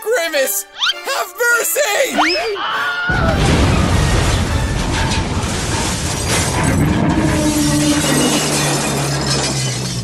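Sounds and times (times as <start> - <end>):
harsh shattering and crackling: 3.2 - 10.0.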